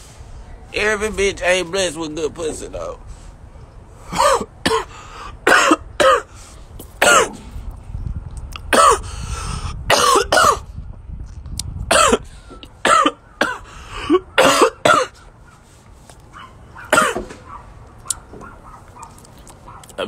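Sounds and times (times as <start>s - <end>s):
man coughing: 4.1s - 6.3s, 7.0s - 7.5s, 8.7s - 9.1s, 9.9s - 10.7s, 11.9s - 15.2s, 16.9s - 17.4s.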